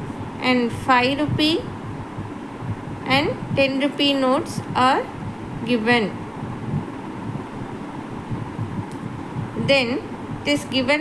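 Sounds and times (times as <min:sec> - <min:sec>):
microphone handling noise: 0:00.0 - 0:10.9.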